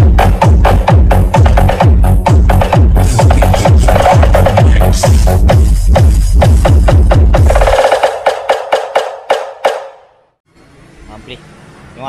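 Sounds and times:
loud electronic dance music: 0.0s - 9.9s
sharp percussion hits: 0.0s - 10.3s.

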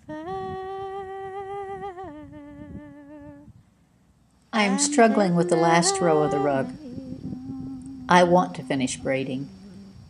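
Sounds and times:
person humming a slow tune: 0.0s - 3.6s, 4.6s - 10.0s.

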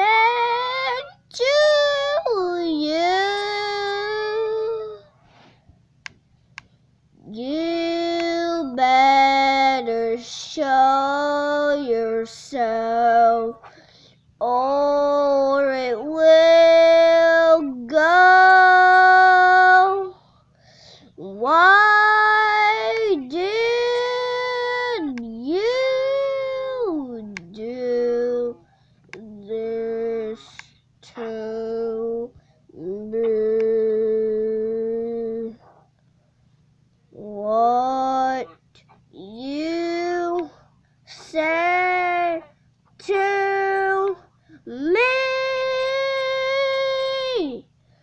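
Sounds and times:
boy singing held notes: 21.2s - 35.6s, 37.2s - 47.6s.

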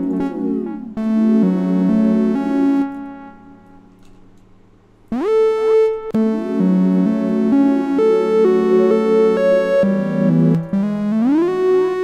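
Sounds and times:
synthesizer chords sliding in pitch: 0.0s - 3.8s, 5.1s - 12.0s.

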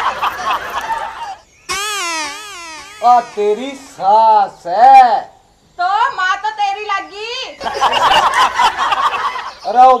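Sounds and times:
high wavering wail: 1.7s - 4.1s.

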